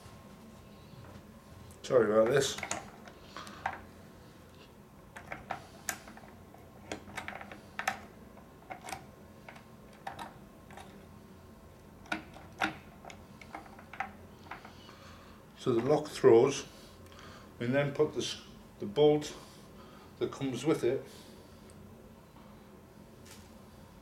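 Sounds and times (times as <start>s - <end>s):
metal lock parts clicking: 2.2s - 3.8s, 5.2s - 11.0s.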